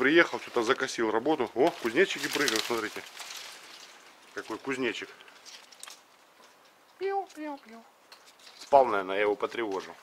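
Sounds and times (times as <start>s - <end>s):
leaves rustling: 0.0s - 10.0s.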